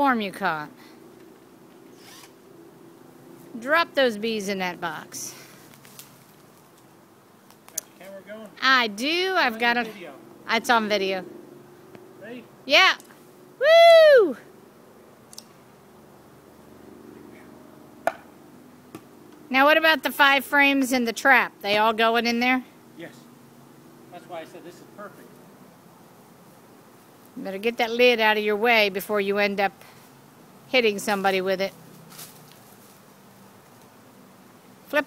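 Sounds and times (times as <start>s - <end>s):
bee swarm buzzing: 0.0s - 13.6s, 14.5s - 35.0s
short rustle: 5.3s - 6.9s, 31.1s - 34.0s
person whooping: 13.6s - 14.5s
sharp knock: 18.0s - 18.3s.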